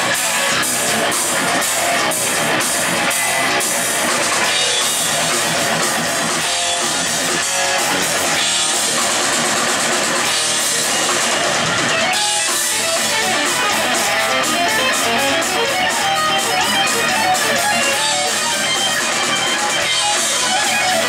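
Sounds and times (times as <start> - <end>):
bass guitar: 0.0 - 21.0
drum kit: 0.0 - 21.0
electric guitars: 0.0 - 21.0.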